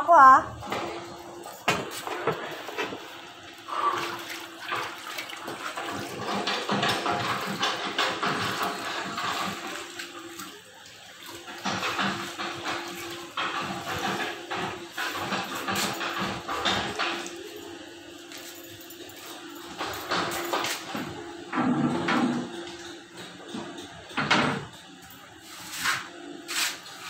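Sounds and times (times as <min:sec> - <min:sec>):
water sloshing in plastic tub: 0:01.8 - 0:17.5.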